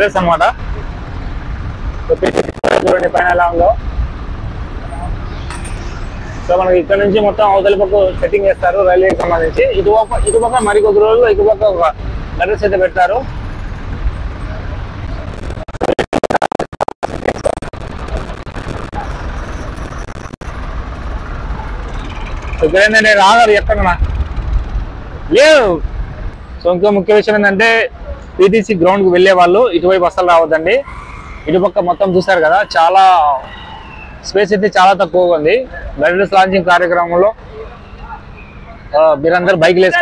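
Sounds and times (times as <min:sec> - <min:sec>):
low rumble of traffic: 0:00.0 - 0:15.7, 0:17.1 - 0:40.0
motorcycle engine rumbling past: 0:20.5 - 0:25.2.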